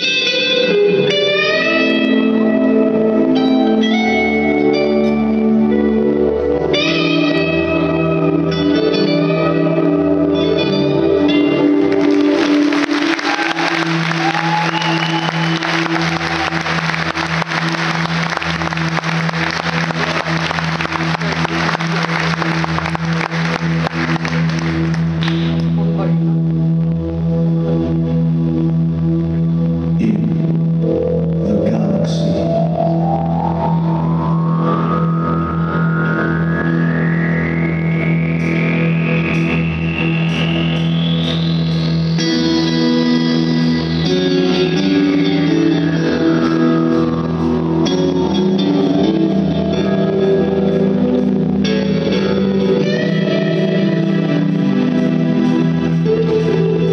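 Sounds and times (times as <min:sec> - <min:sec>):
steady low drone: 0:00.0 - 0:56.9
tone sweeping upward in pitch: 0:30.2 - 0:56.9.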